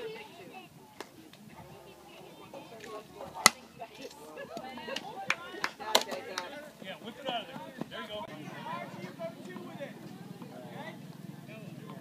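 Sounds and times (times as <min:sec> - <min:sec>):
faint spectator voices: 0:00.0 - 0:12.0
baseball bat hitting ball: 0:03.3 - 0:03.7.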